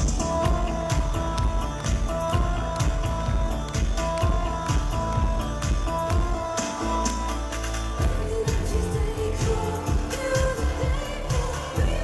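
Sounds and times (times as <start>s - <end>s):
drum beat: 0.0s - 6.8s
synth-pop band with singing: 0.0s - 12.0s.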